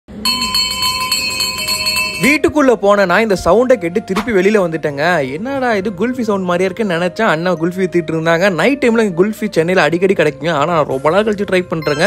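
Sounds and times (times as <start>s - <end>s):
metal bell rung rapidly: 0.3s - 2.4s.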